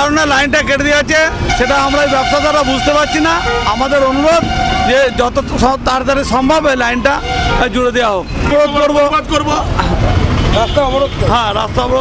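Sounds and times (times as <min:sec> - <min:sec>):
man talking: 0:00.0 - 0:12.0
street traffic: 0:00.0 - 0:12.0.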